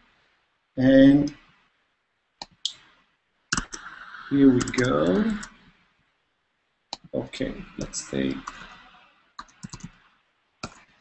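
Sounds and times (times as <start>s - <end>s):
computer clicks: 3.5s - 3.9s, 4.5s - 5.6s, 9.4s - 10.0s, 10.6s - 10.9s.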